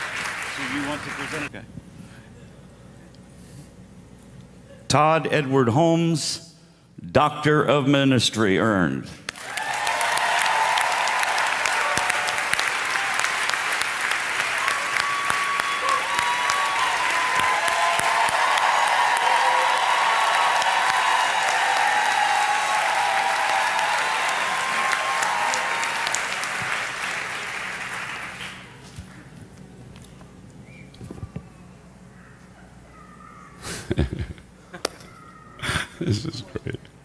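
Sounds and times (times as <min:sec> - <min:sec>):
audience applauding: 0:00.0 - 0:01.5, 0:09.3 - 0:29.3.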